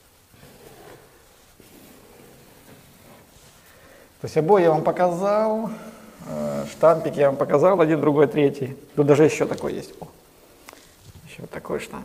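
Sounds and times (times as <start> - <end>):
rustling and scraping of hands and tool: 0.0 - 5.0, 9.0 - 11.4.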